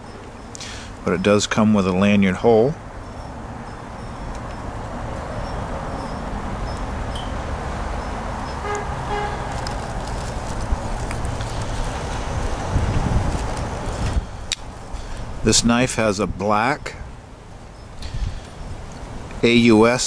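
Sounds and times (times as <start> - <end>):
traffic rumbling: 0.0 - 20.0
short pitched tone: 8.6 - 9.6.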